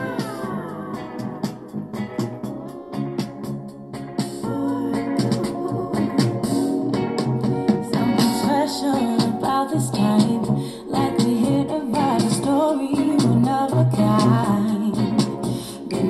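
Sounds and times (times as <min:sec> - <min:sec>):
woman singing: 0:00.0 - 0:01.6, 0:04.4 - 0:06.8, 0:07.8 - 0:16.0
guitar and keyboard: 0:00.0 - 0:16.0.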